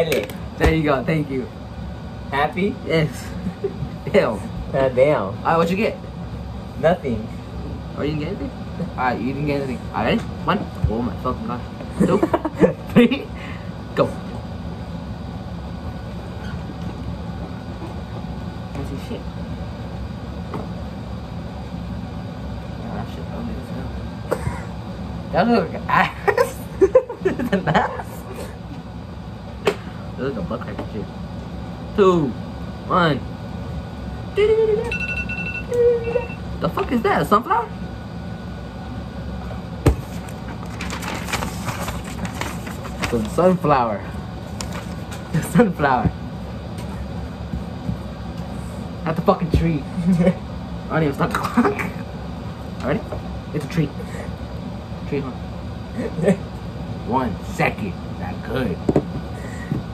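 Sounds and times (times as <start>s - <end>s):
low mechanical hum: 0.0s - 59.9s
paper rustling and crinkling: 40.0s - 43.4s, 44.4s - 45.3s.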